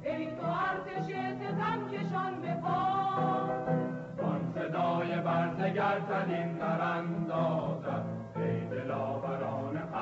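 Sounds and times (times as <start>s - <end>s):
choir singing an anthem: 4.2s - 10.0s.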